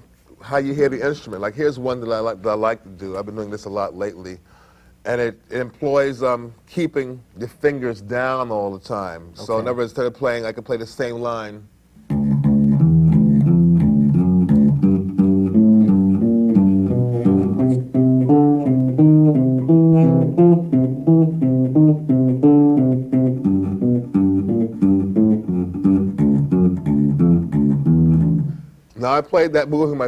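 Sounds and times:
electric bass plucked notes: 12.0s - 28.8s.

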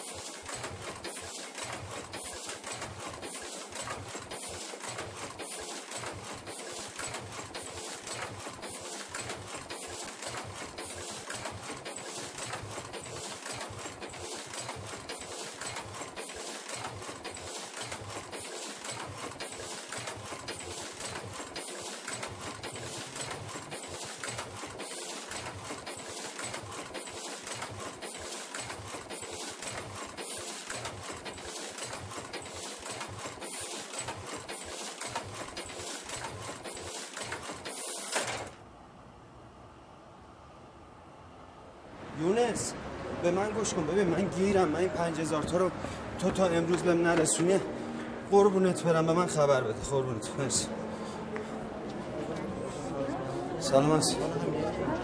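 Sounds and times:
rapid mechanical clatter: 0.0s - 38.6s.

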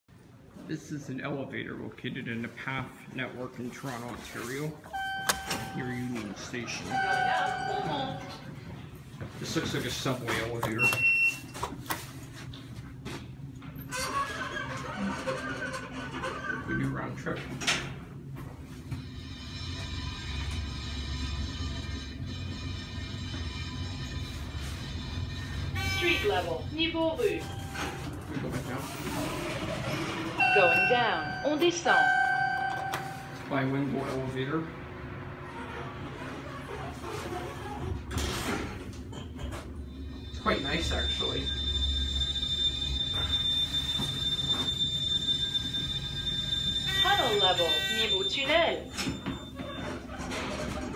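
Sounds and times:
elevator high whine: 4.8s - 50.9s
elevator low rumble: 4.8s - 50.9s.

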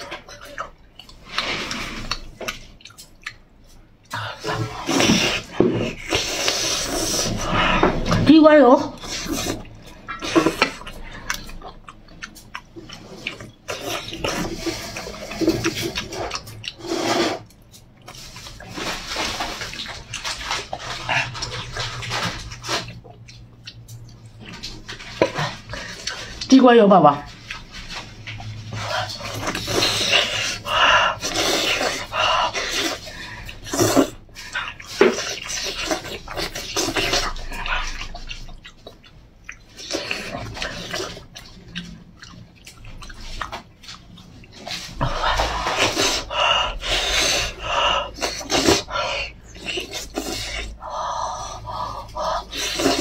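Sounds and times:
wet chewing and lip-smacking: 0.0s - 26.6s, 27.2s - 53.0s.

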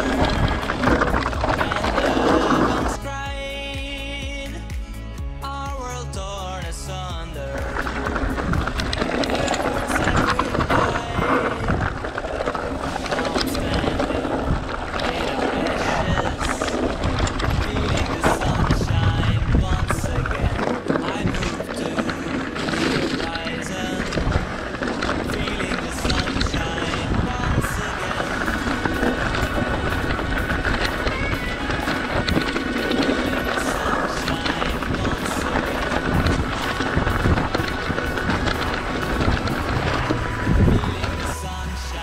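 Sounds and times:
bike rattling over bumps: 0.0s - 4.6s, 5.8s - 42.0s
background music: 0.0s - 42.0s
tyres crunching over stones: 0.0s - 42.0s.

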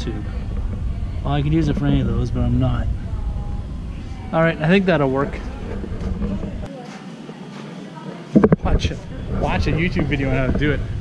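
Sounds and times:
faint voices: 0.0s - 11.0s
store background noise: 0.0s - 11.0s.

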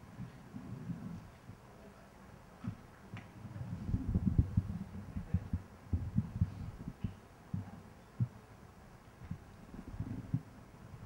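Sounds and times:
breath noise on microphone: 0.0s - 2.0s, 2.6s - 8.5s, 9.2s - 11.0s
microphone handling thuds: 2.6s - 8.4s.

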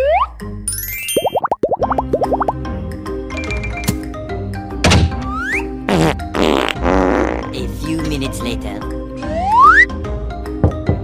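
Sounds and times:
cartoon fart sounds: 5.5s - 7.5s
children's background music: 7.5s - 11.0s.

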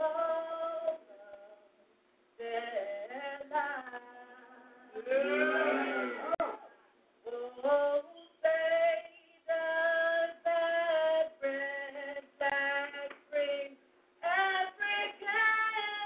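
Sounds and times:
person singing long notes: 4.9s - 6.6s.

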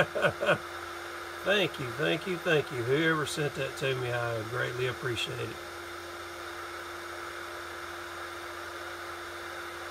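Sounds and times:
heater fan running: 0.0s - 9.9s.

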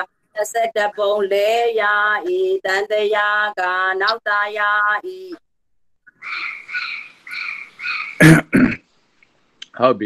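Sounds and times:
person coughing: 8.2s - 8.8s.

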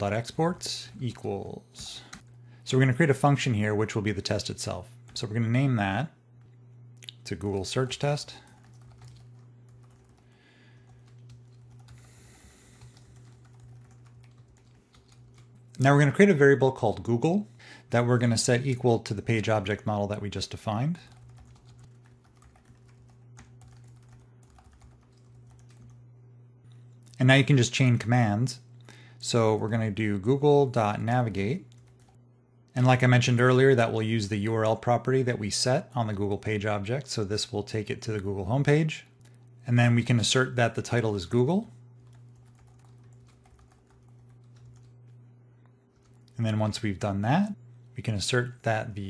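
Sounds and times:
steady low hum: 0.0s - 49.0s
computer keyboard typing: 7.4s - 15.8s, 21.0s - 26.0s, 31.5s - 32.2s, 42.0s - 45.2s.

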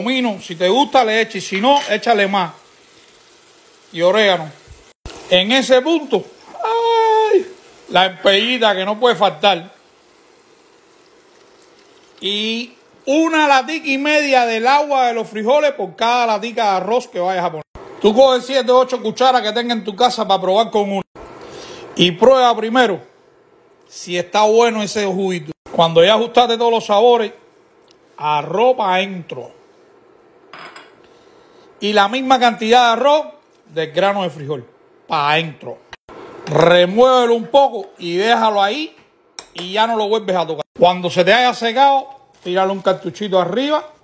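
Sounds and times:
food sizzling in fat: 0.0s - 16.9s, 36.0s - 38.8s, 40.0s - 44.0s.

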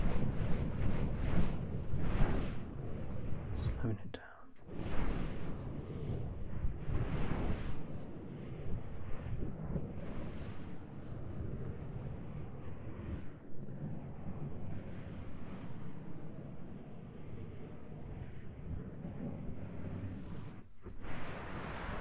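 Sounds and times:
hissy swish: 0.0s - 3.9s, 4.6s - 13.9s, 19.4s - 22.0s
muffled rustling on microphone: 0.0s - 4.0s, 4.6s - 16.8s, 17.4s - 22.0s.

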